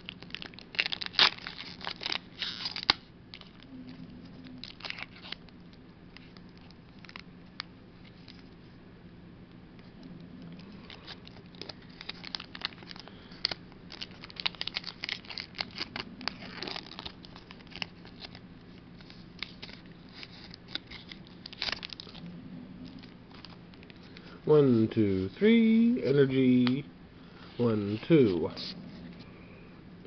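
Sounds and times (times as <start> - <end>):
foil wrapper crinkling: 0.0 - 3.7, 4.4 - 5.5, 10.6 - 22.2.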